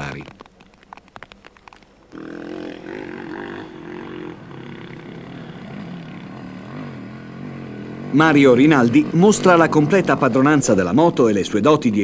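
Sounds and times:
motorcycle engine revving: 0:02.1 - 0:11.7.

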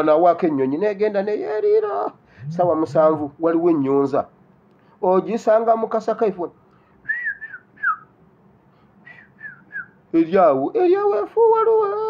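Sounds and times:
man whistling bird call: 0:07.0 - 0:08.2, 0:09.0 - 0:10.0.

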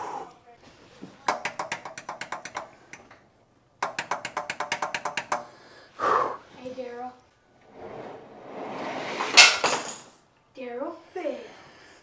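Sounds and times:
tools rustling and clattering: 0:09.3 - 0:10.2
sharp metal clank: 0:09.4 - 0:10.1.

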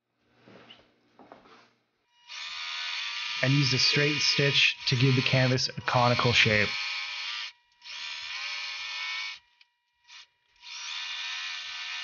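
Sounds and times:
sewing machine motor whine: 0:02.3 - 0:12.0.

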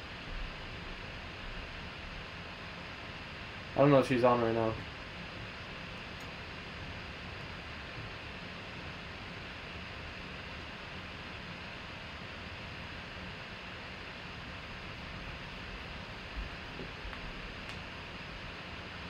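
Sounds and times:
room tone hiss: 0:00.0 - 0:19.0.

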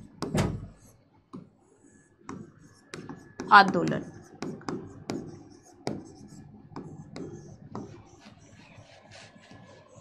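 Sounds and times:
stylus scratching on screen: 0:00.0 - 0:10.0.

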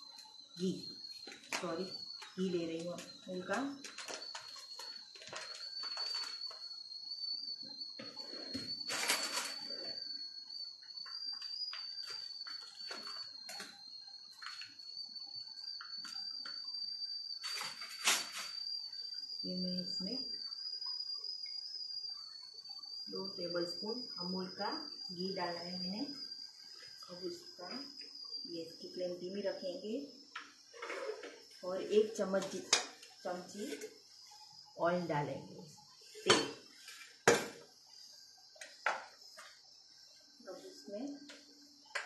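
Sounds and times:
thin steady high tone: 0:00.0 - 0:42.0.

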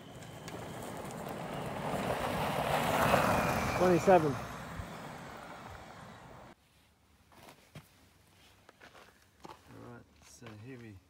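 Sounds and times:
electric vehicle driving off: 0:00.0 - 0:06.6
man speaking: 0:03.7 - 0:04.6.

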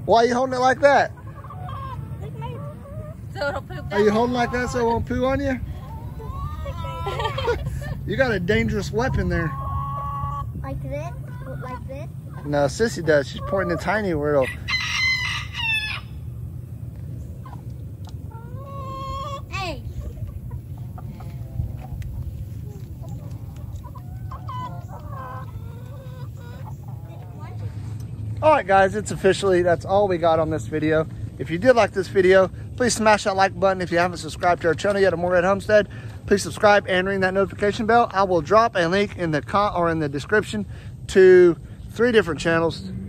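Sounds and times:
hens clucking: 0:00.0 - 0:43.0
rooster crowing: 0:14.4 - 0:16.2.

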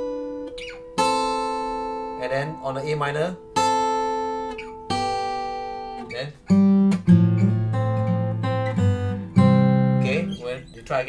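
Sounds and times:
acoustic guitar chords ringing: 0:00.0 - 0:11.0.

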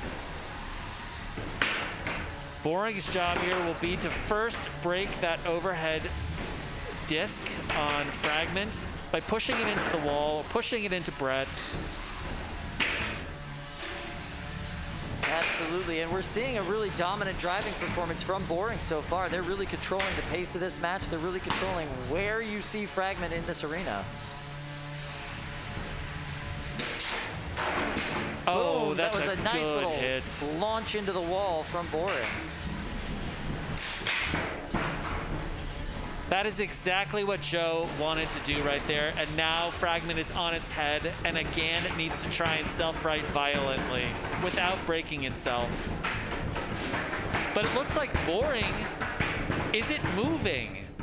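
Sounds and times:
robot motors whining: 0:02.3 - 0:27.6, 0:28.4 - 0:33.8.

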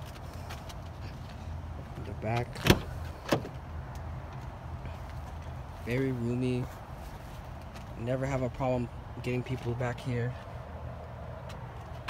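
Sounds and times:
man speaking: 0:05.8 - 0:06.8, 0:08.0 - 0:10.5.

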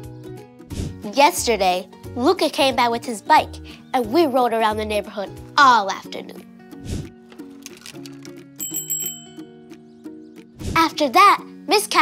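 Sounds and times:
background music: 0:00.0 - 0:12.0
bicycle bell trill: 0:08.6 - 0:09.6.

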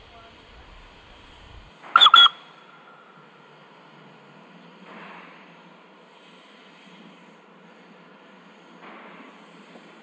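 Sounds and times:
steam whistle toots: 0:02.0 - 0:02.5.

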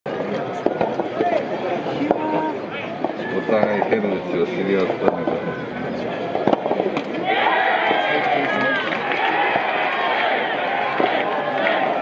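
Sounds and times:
people shouting: 0:07.2 - 0:12.0.

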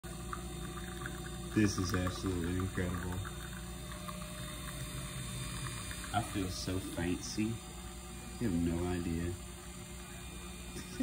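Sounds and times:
coffee machine humming: 0:00.0 - 0:11.0.

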